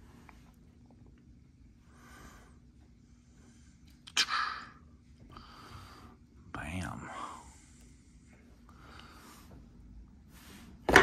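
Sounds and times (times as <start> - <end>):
man whispering breathily: 6.4 - 7.8.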